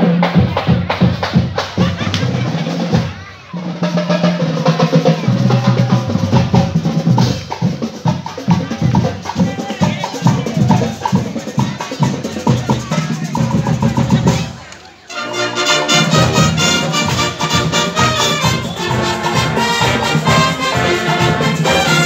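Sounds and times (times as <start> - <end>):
snare and bass drum beating: 0.0 - 14.6, 15.6 - 22.0
marching band playing: 0.0 - 22.0
low brass bass line: 15.1 - 22.0.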